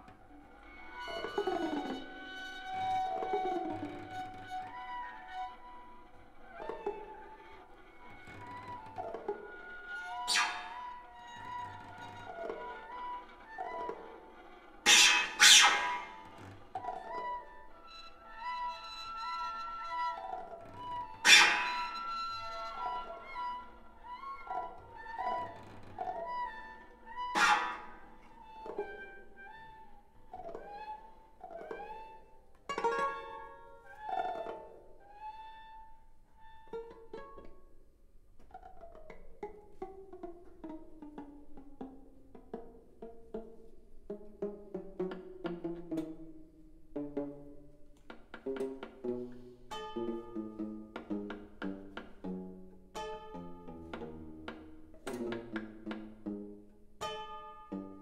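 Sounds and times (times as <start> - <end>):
bowed strings playing: 0.0 - 58.0.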